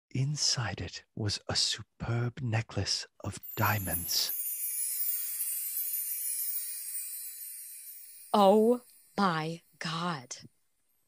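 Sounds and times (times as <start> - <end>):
high hissy shimmer effect: 3.3 - 9.8.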